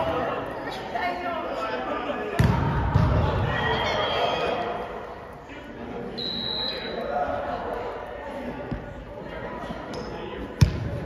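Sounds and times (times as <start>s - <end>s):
voices in echoing gym: 0.0s - 11.0s
referee's whistle blast: 6.1s - 7.0s.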